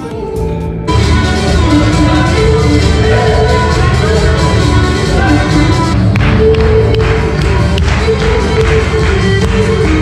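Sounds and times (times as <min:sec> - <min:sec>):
loud live folk music: 0:00.0 - 0:10.0
audience clapping along: 0:01.0 - 0:10.0.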